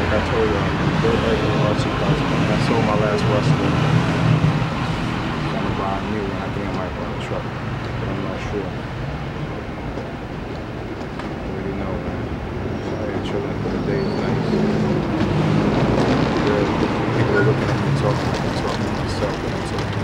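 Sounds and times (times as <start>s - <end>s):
vehicle passing: 0.0s - 20.0s.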